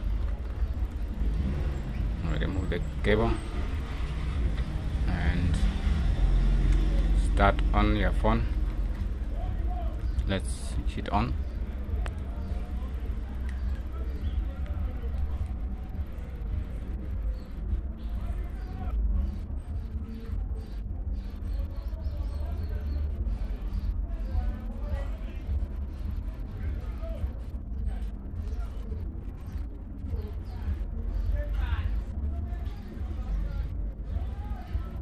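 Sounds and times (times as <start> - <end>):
background music: 0.0 - 35.0
steady low rumble: 0.0 - 35.0.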